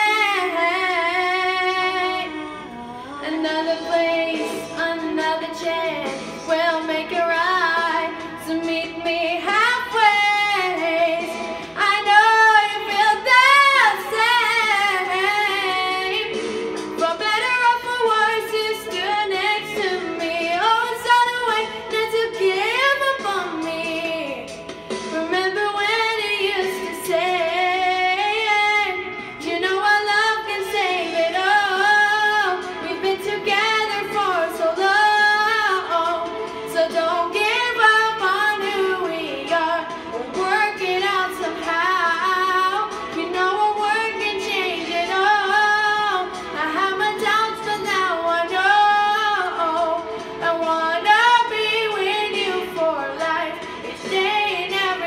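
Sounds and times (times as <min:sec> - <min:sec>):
girl singing into microphone: 0:00.0 - 0:55.0.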